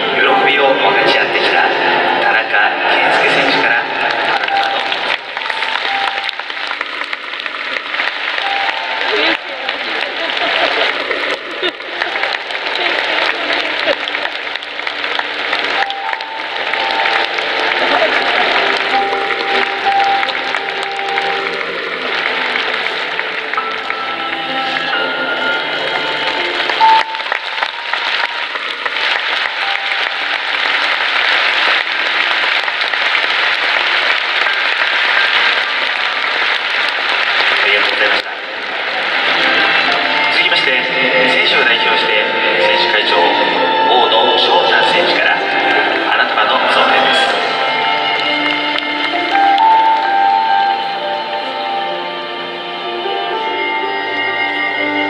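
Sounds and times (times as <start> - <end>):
large crowd applauding: 0.0 - 53.4
music playing: 0.0 - 55.0.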